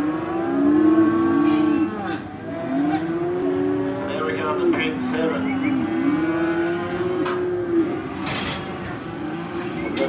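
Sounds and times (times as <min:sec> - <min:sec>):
cattle mooing: 0:00.0 - 0:10.0.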